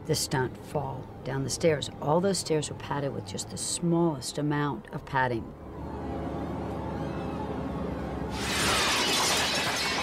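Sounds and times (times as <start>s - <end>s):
low steady drone: 5.4s - 8.8s
window glass shattering: 8.4s - 10.0s.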